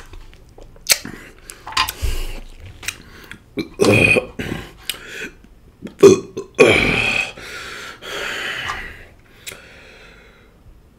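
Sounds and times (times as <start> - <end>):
man belching: 3.6 - 4.4, 5.8 - 7.4.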